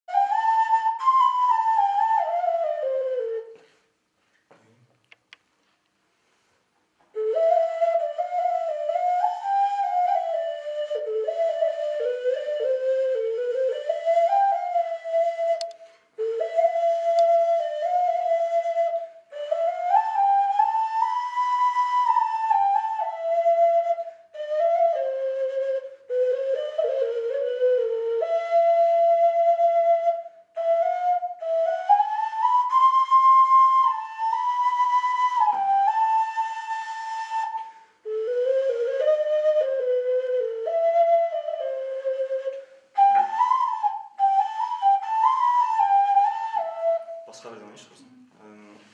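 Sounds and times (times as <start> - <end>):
clay ocarina folk melody: 0.1 - 3.9, 6.4 - 48.9.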